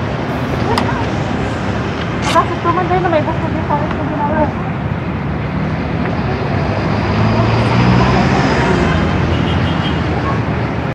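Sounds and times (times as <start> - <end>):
street traffic: 0.0 - 10.9
vehicle engine running nearby: 0.0 - 10.9.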